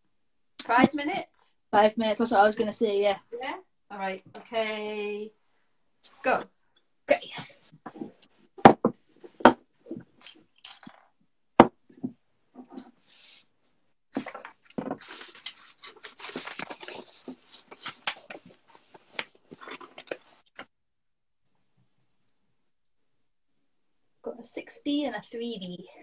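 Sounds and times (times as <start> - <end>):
knocks and clicks on tabletop: 8.6 - 9.6
pencils scratching on paper: 14.2 - 20.5.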